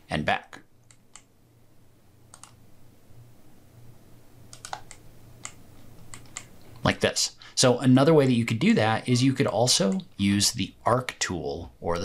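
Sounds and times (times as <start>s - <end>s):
faint low hum: 0.0s - 12.0s
sharp computer input clicks: 4.5s - 6.5s.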